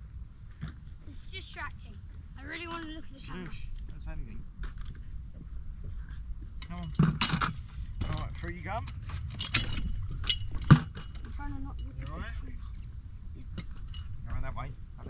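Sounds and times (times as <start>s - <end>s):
wind rumbling on microphone: 0.0s - 15.0s
sharp clinks and knocks: 6.6s - 14.4s.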